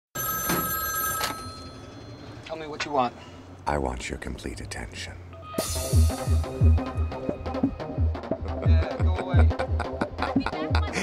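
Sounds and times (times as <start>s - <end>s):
telephone ringing: 0.2s - 2.5s
hardcore techno music: 5.6s - 11.0s.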